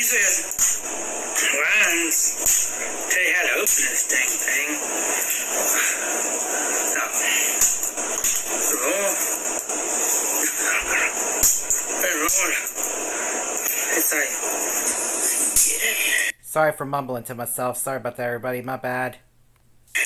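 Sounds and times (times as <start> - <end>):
steady hiss: 0.0 - 16.4.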